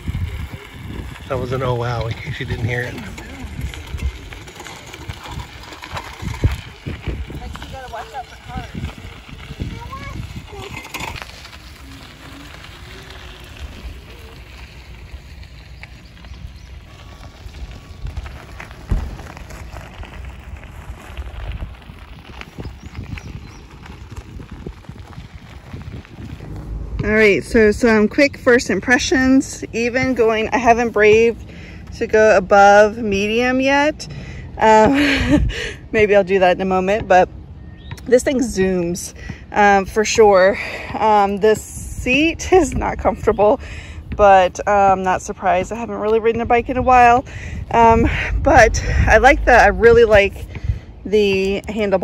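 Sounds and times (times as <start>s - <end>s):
wind buffeting microphone: 0.0s - 36.2s, 37.4s - 52.0s.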